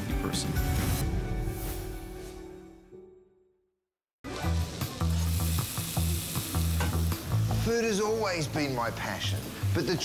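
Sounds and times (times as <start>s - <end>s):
food sizzling in a hot pan: 4.3s - 10.0s.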